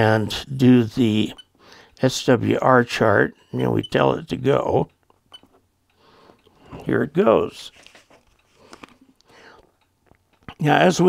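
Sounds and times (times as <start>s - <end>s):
person speaking: 0.0s - 1.4s, 2.0s - 4.9s, 6.5s - 8.8s, 10.4s - 11.0s.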